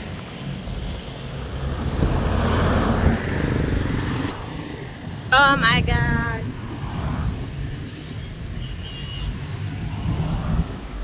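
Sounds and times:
traffic rumble of engines and tyres: 0:00.0 - 0:11.0.

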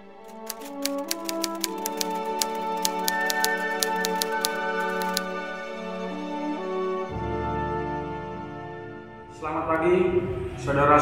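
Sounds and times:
background music with held notes: 0:00.0 - 0:11.0
typewriter keystroke clicks: 0:00.2 - 0:05.3.

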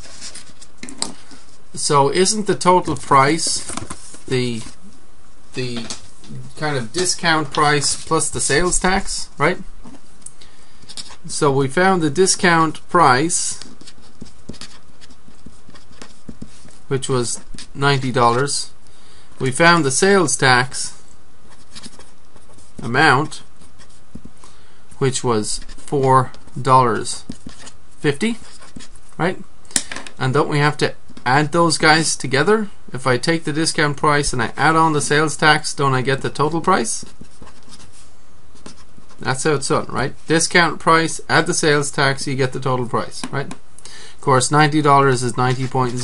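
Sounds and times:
steady background hiss: 0:00.0 - 0:46.0
steady low hum: 0:00.0 - 0:46.0
pen tapping and scratching: 0:13.6 - 0:16.8, 0:28.4 - 0:29.0.

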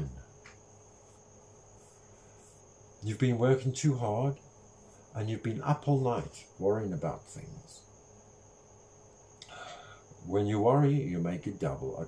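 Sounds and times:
soft hisses: 0:00.0 - 0:03.1
faint high-pitched whine: 0:00.0 - 0:12.0.

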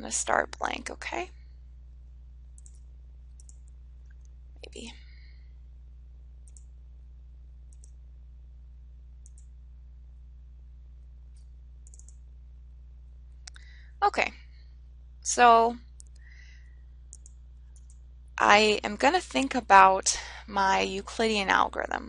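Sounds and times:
steady low hum: 0:00.0 - 0:22.0
computer mouse clicks: 0:02.6 - 0:04.3, 0:06.4 - 0:06.7, 0:07.7 - 0:08.0, 0:09.2 - 0:09.5, 0:11.4 - 0:12.2, 0:15.9 - 0:16.3, 0:17.1 - 0:18.0.

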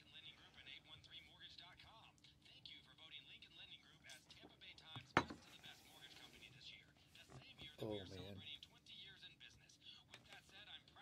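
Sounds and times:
man's voice: 0:00.0 - 0:11.0.

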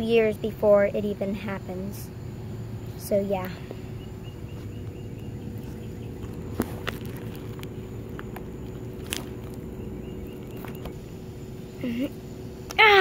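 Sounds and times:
faint hum: 0:00.0 - 0:13.0.

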